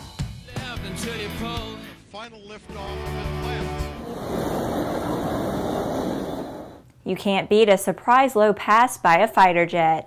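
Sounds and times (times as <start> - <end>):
surf rushing: 4.0 - 6.8.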